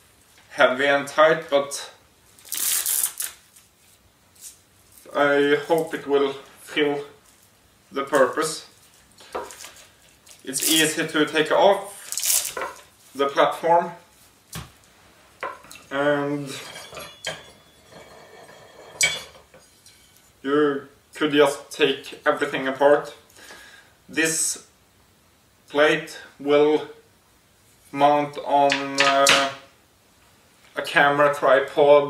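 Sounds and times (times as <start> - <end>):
faint rubbing: 16.4 - 19.0
shooting rest rustling and scraping: 16.5 - 20.4.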